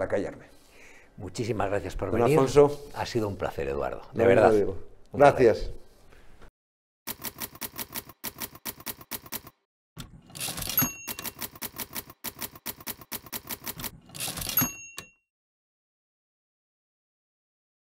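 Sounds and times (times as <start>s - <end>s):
typewriter carriage return bell: 7.1s - 9.6s, 10.3s - 15.3s
typewriter keys striking: 7.1s - 9.6s, 10.3s - 15.1s.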